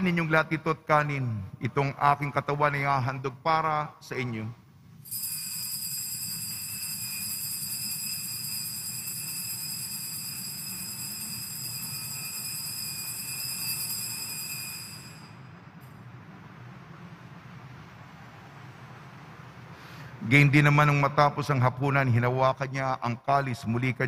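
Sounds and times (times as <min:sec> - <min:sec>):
altar bells ringing: 0:05.0 - 0:15.7.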